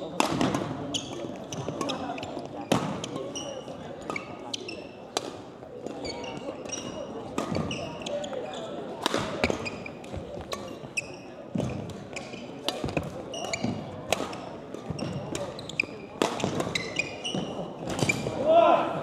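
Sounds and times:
murmur of voices: 0.0s - 19.0s
rackets striking shuttlecock: 0.1s - 3.2s, 9.0s - 10.8s, 11.5s - 18.3s
shoes squeaking on floor: 0.8s - 5.1s, 5.8s - 18.4s.

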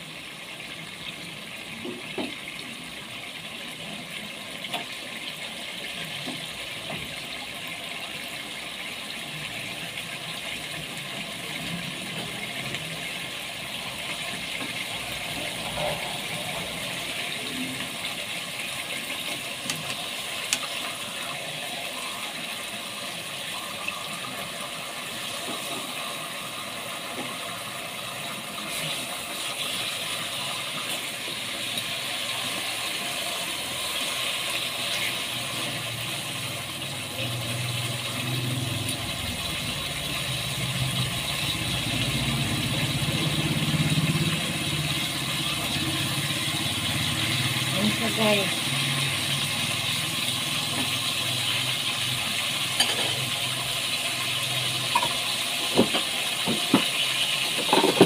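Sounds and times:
meat sizzling in hot oil: 0.0s - 58.0s.

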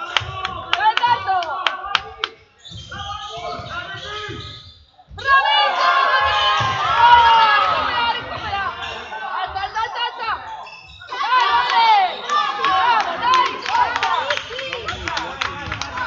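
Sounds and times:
sneakers squeaking: 2.3s - 5.4s, 6.1s - 15.1s
players and spectators shouting: 5.2s - 16.0s.

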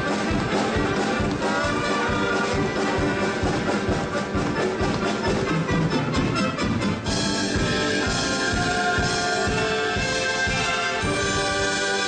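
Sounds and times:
steady drum beat: 0.0s - 12.0s
wind band playing: 0.0s - 12.0s.

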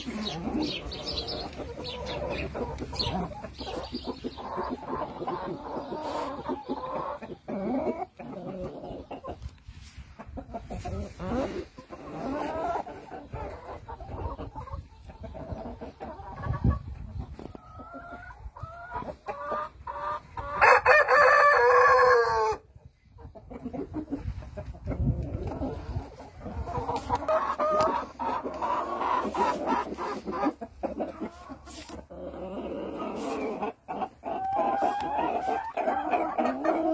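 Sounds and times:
chickens clucking: 0.0s - 36.9s.

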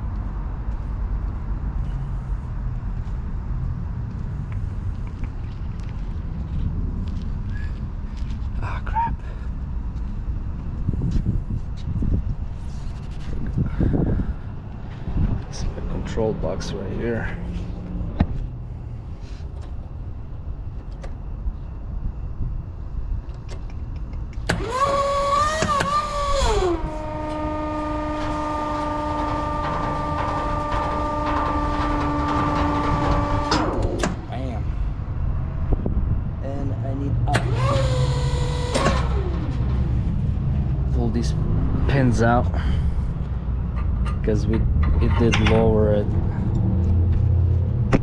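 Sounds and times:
steady low rumble: 0.0s - 24.7s, 26.2s - 48.0s
hydraulic system whining: 24.4s - 35.1s, 37.2s - 42.3s.

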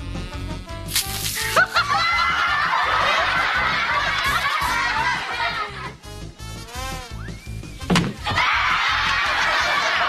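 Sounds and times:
upbeat music: 0.0s - 6.6s
crowd laughing: 1.4s - 6.0s, 8.2s - 10.0s
sharp smack: 7.8s - 8.2s.

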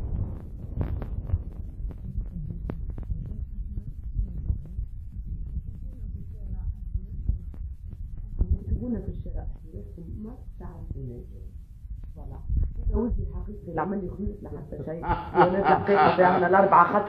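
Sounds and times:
phone microphone rubbing: 0.0s - 15.7s.

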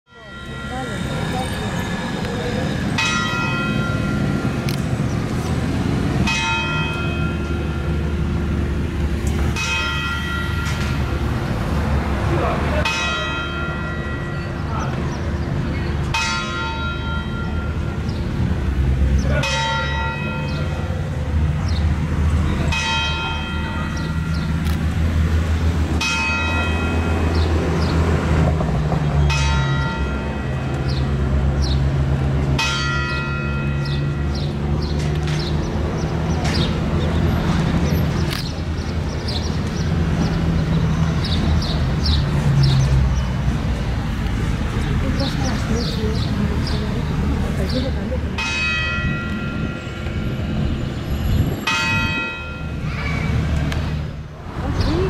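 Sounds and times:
large bell tolling: 0.1s - 5.0s, 51.6s - 53.4s.

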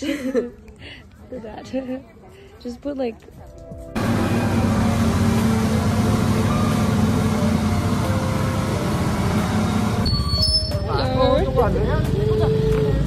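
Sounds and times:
wind: 0.0s - 13.0s
water rushing: 4.0s - 10.0s
boat engine running: 4.0s - 10.2s.

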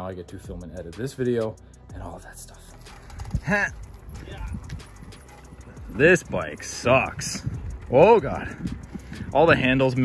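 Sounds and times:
bicycle rattling on concrete: 2.4s - 10.0s.

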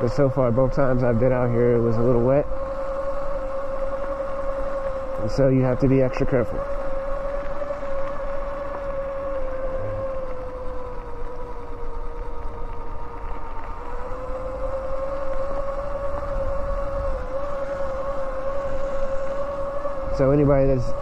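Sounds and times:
electric dirt bike motor whining: 0.0s - 21.0s.

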